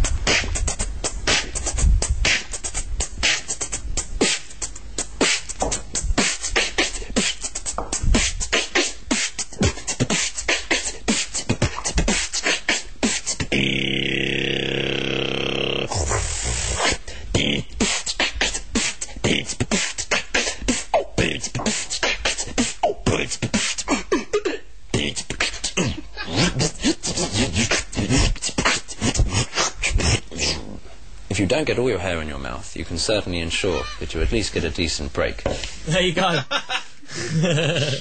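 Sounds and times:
vocal beatbox rhythm: 0.0 - 30.9
held buzzing vocal note: 0.0 - 31.0
short mouth hiss: 15.6 - 20.9, 25.4 - 30.8.

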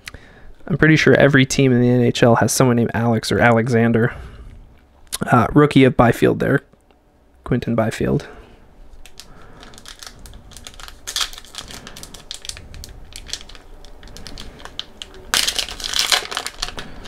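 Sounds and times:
foil wrapper crinkling and tearing: 8.9 - 17.0.

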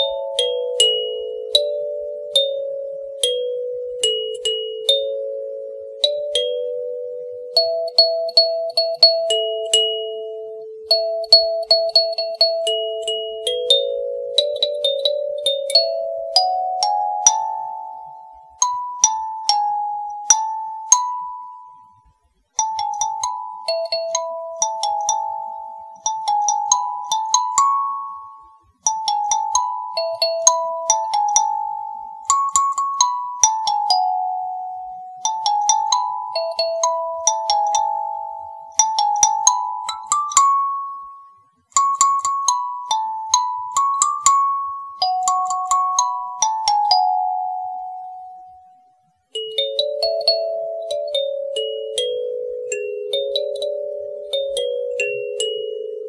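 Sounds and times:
kalimba music: 0.0 - 21.8, 22.6 - 48.4, 49.4 - 56.0
kalimba plucked notes: 49.4 - 56.0.

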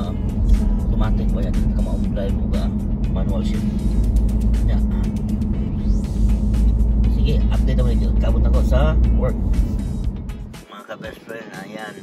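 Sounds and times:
man talking: 0.0 - 3.8, 4.5 - 5.3, 7.0 - 9.5
car road rumble inside cabin: 0.0 - 10.6
background music: 0.0 - 12.0.

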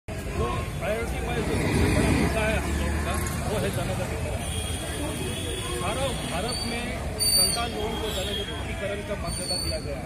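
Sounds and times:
people talking: 0.1 - 10.0
street noise rumble: 0.1 - 10.0.

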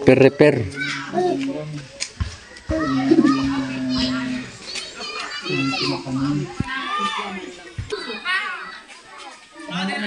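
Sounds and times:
children chattering and calling: 0.0 - 10.0
low bumps: 1.3 - 4.8.

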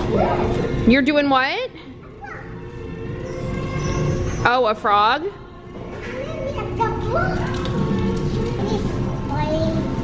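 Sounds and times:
background music: 0.0 - 10.0
toddler voice: 2.0 - 2.6, 6.1 - 7.7, 8.6 - 10.0.

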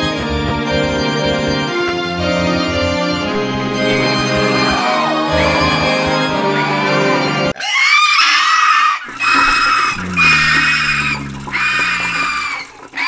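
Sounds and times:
music: 0.0 - 7.6.

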